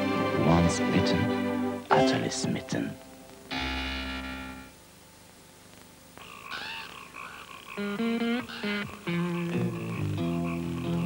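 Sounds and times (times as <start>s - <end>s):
held musical chord: 0.0s - 3.3s
guitar notes: 0.0s - 4.8s
frogs croaking: 0.0s - 11.0s.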